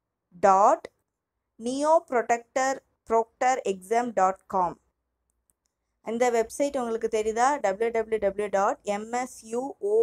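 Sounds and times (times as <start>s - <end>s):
person speaking: 1.6s - 4.8s, 6.0s - 10.0s.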